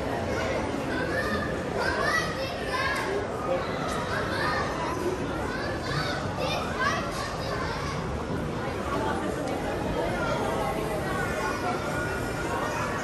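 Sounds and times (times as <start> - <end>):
children calling and chattering: 0.0 - 13.0
crowd chatter: 0.0 - 13.0.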